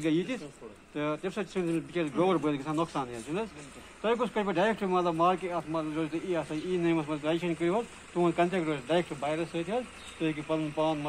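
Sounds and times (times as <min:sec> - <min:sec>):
man speaking: 0:00.0 - 0:11.0.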